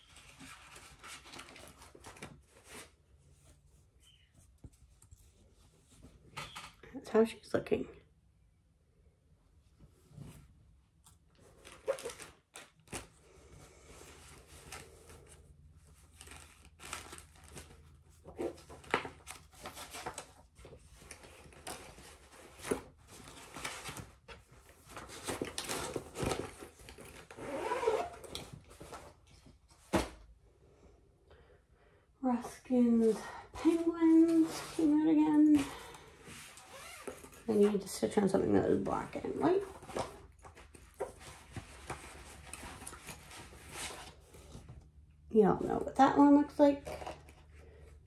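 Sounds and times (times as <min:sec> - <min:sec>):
fabric rustling and crinkling: 0:09.8 - 0:30.2, 0:32.6 - 0:45.0.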